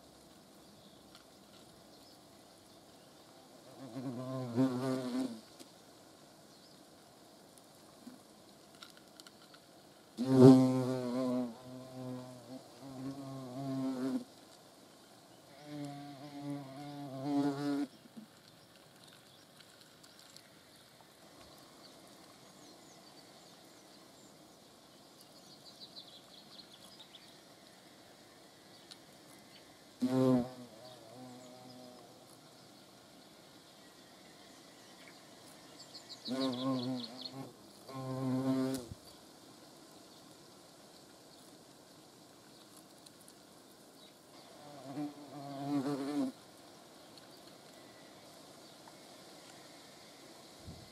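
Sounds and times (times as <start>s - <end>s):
hornet wings buzzing: 3.6s - 5.5s, 10.1s - 14.4s, 15.5s - 18.0s, 28.8s - 32.8s, 34.2s - 39.1s, 44.4s - 46.4s
hornet buzzing in flight: 36.2s - 38.9s.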